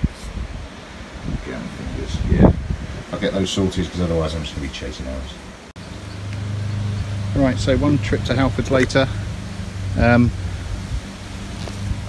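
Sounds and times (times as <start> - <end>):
wind buffeting microphone: 0.0 - 5.2, 5.9 - 12.0.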